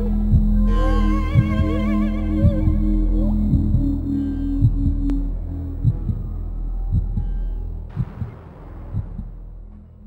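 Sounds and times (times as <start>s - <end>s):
heartbeat thumps: 0.0s - 9.9s
low droning hum: 0.0s - 10.0s.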